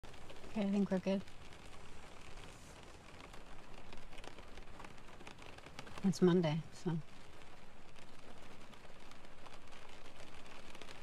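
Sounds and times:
rain pattering on car roof: 0.0s - 11.0s.

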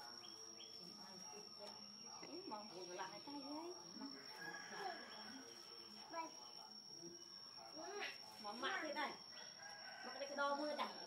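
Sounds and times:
rooster crowing: 4.2s - 5.6s, 9.4s - 10.6s.

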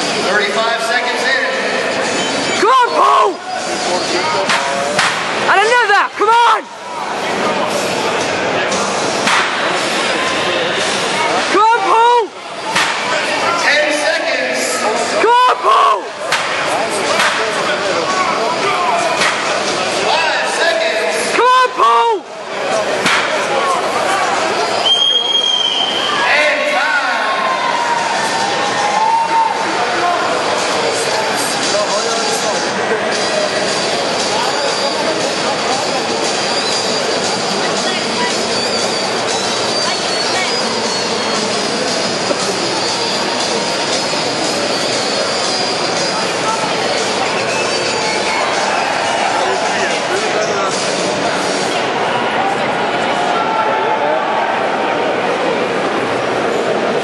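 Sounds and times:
crowd chattering: 0.0s - 57.0s
loud shouts: 2.5s - 4.6s, 5.5s - 7.0s, 11.4s - 16.2s, 20.0s - 22.3s, 23.7s - 30.3s.

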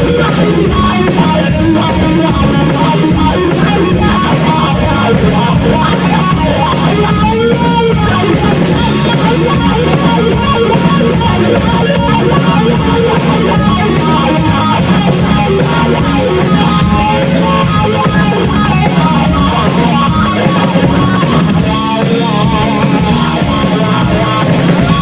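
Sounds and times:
bass guitar: 0.0s - 25.0s
drum kit: 0.0s - 25.0s
electric guitar: 0.0s - 25.0s.

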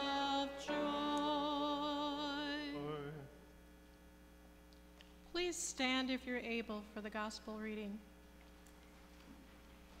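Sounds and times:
hymn singing: 0.0s - 3.4s
electrical mains hum: 0.0s - 10.0s.

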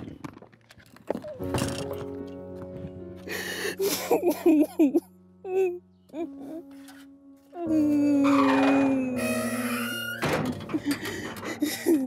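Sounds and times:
background music held notes: 1.3s - 11.6s
woman sobbing: 3.3s - 6.7s, 7.5s - 10.0s, 10.7s - 12.0s.

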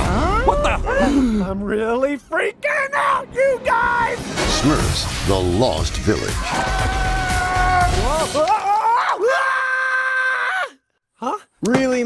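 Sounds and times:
cartoon character screaming: 6.4s - 10.8s.

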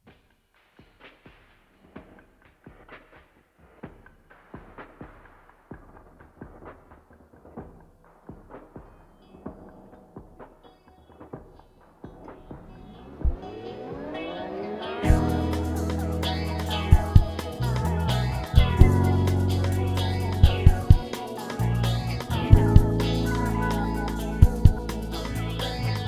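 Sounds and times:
high sustained notes: 12.7s - 26.0s.

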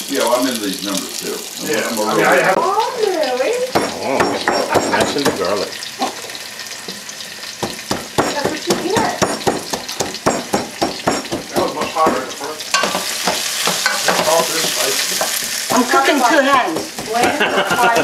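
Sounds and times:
vegetables sizzling in a pot: 0.0s - 18.0s
wooden pestle knocking in ceramic bowl: 7.6s - 12.2s.

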